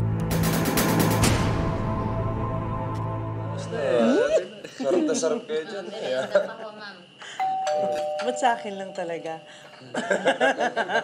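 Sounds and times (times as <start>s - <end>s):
two-tone doorbell chime: 7.4s - 9.6s.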